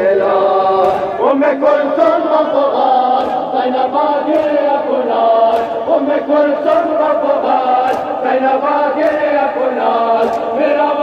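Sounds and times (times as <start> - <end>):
men chanting a lament: 0.0 - 11.0
sharp chest slaps: 0.8 - 1.2, 3.1 - 3.5, 4.3 - 4.7, 5.4 - 5.9, 7.8 - 8.2, 9.0 - 9.3, 10.2 - 10.6.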